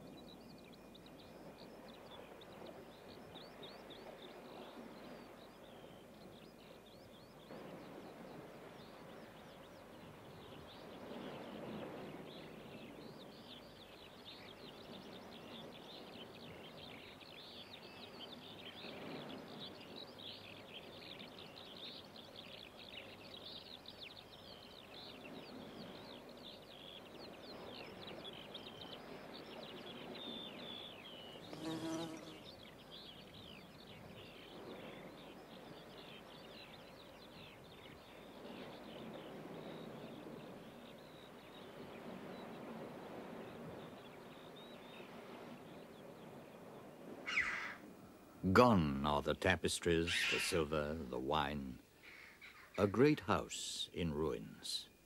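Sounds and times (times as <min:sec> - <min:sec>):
small birds twittering: 0:00.0 - 0:47.8, 0:48.7 - 0:55.0
insects buzzing: 0:31.4 - 0:32.5
short loud bird call: 0:47.3 - 0:47.8.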